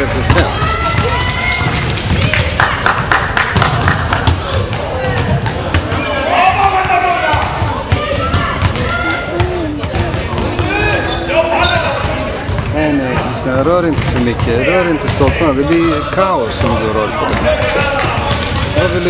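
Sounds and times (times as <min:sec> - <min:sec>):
basketball bouncing on court floor: 0:03.5 - 0:11.0, 0:11.6 - 0:19.0.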